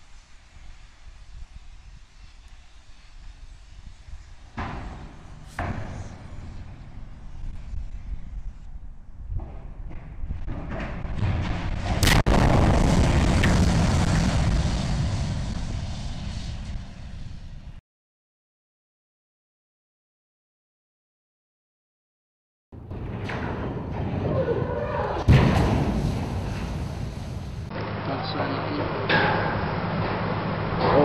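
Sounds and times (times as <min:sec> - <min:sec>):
loud crash on ground: 0:10.4 - 0:17.5, 0:25.2 - 0:27.7
long rumble: 0:10.4 - 0:17.8.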